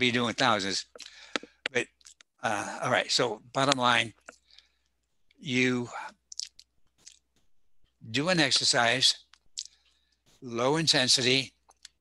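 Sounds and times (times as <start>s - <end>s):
mouth clicks and lip smacks: 0.9s - 2.4s, 3.7s - 4.5s, 6.2s - 8.0s, 8.6s - 10.4s.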